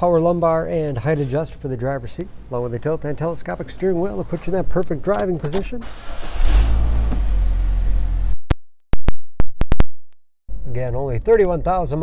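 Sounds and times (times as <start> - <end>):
car engine starting and running: 5.1 - 8.4.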